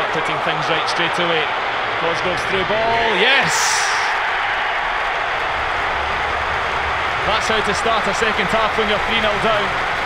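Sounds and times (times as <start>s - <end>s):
football crowd cheering: 0.0s - 10.0s.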